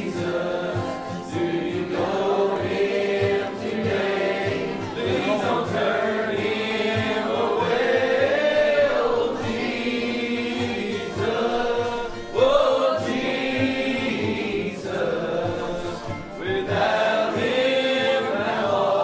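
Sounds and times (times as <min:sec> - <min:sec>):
congregation singing a hymn: 0:00.0 - 0:19.0
strummed guitar: 0:00.0 - 0:19.0.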